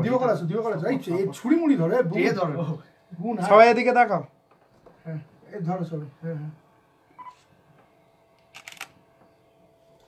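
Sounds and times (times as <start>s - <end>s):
camera shutter clicks: 8.4s - 9.0s.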